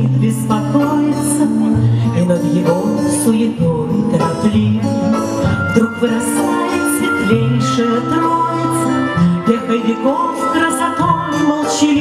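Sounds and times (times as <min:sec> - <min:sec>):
backing track with bass line: 0:00.0 - 0:12.0
woman singing: 0:00.0 - 0:12.0.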